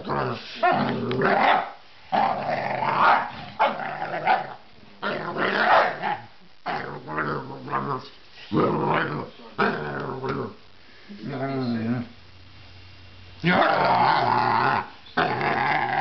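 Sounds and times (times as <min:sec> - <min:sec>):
dog play-growling: 0:00.0 - 0:10.6, 0:13.4 - 0:16.0.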